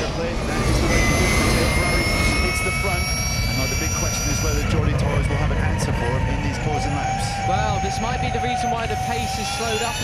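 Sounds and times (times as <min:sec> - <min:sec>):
wind: 0:00.0 - 0:10.0.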